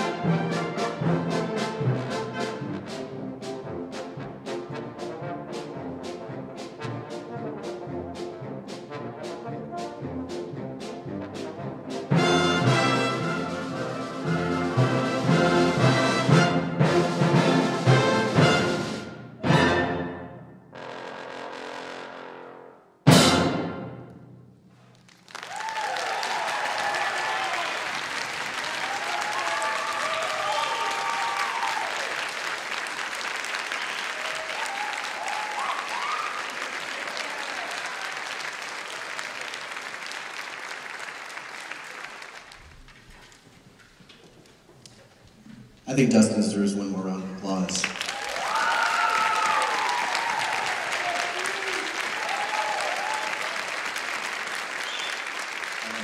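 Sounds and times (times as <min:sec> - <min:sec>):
concert band playing: 0:00.0 - 0:24.4
trombone solo: 0:11.3 - 0:24.0
audience applauding: 0:24.8 - 0:43.6, 0:47.5 - 0:56.0
whoops and cheers: 0:25.4 - 0:28.0, 0:28.6 - 0:32.3, 0:33.8 - 0:38.3, 0:48.0 - 0:53.8.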